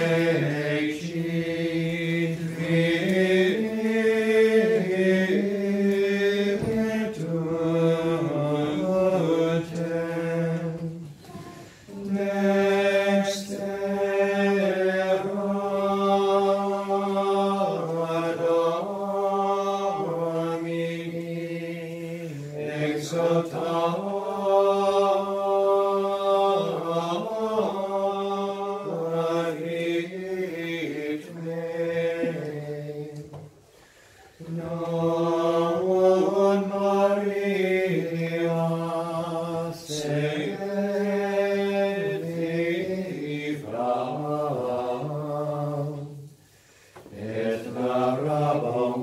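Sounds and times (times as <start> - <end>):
choir singing a sacred chant: 0.0 - 33.5, 34.3 - 46.4, 47.0 - 49.0.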